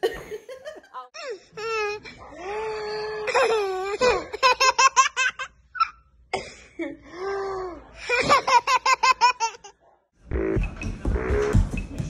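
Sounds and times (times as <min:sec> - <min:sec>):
baby laughing: 0:08.1 - 0:09.8.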